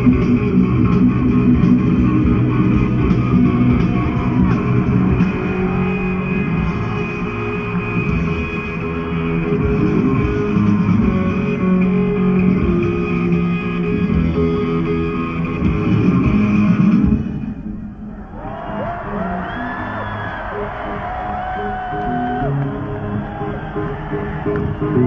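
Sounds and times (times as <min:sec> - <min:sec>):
rock band playing: 0:00.0 - 0:17.8.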